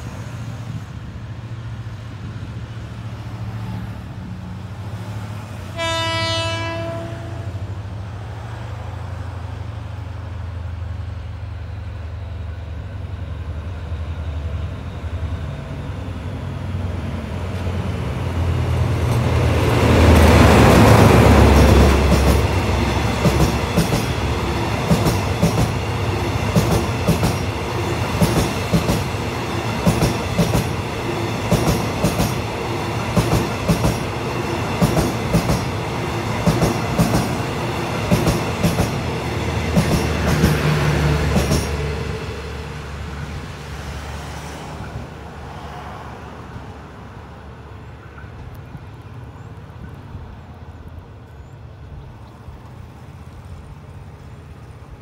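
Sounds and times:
diesel locomotive passing: 0:00.0 - 0:55.0
clickety-clack of train wheels: 0:17.4 - 0:42.0.

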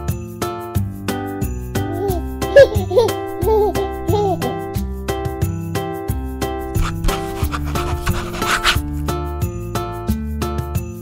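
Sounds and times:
marker pen rubbing on paper: 0:06.6 - 0:09.1.

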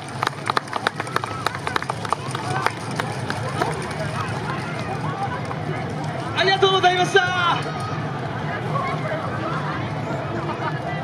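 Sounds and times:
audience clapping: 0:00.0 - 0:04.4
murmur of voices: 0:00.0 - 0:11.0.

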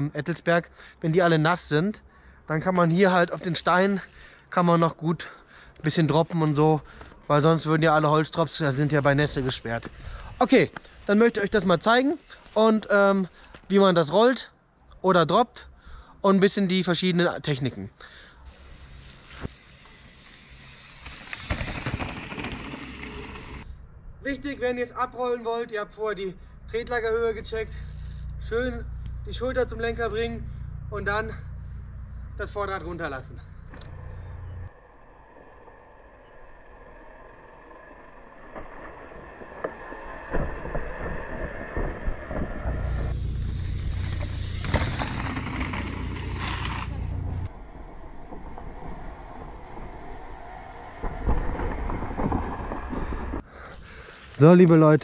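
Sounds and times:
bike tyres on gravel: 0:05.9 - 0:13.8, 0:18.5 - 0:25.0, 0:36.3 - 0:55.0
low rumble with hiss: 0:18.5 - 0:34.8, 0:42.6 - 0:48.2
bike knocks and rattles: 0:21.0 - 0:23.6, 0:42.6 - 0:47.5.

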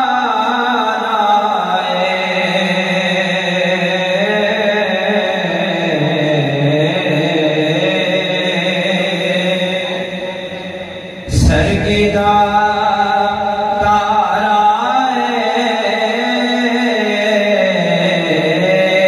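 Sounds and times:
man chanting unaccompanied: 0:00.0 - 0:19.0.

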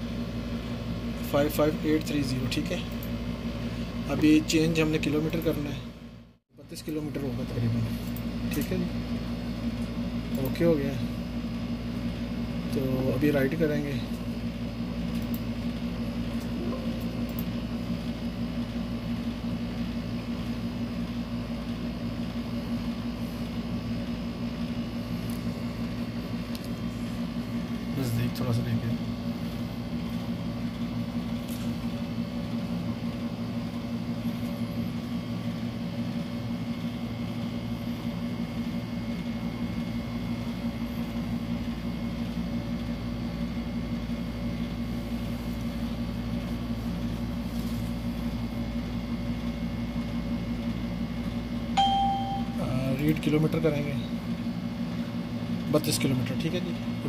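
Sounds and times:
low mechanical hum: 0:00.0 - 0:57.0.

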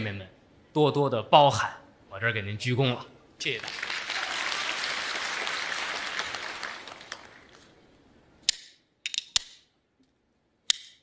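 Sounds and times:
audience applause: 0:03.4 - 0:07.8.

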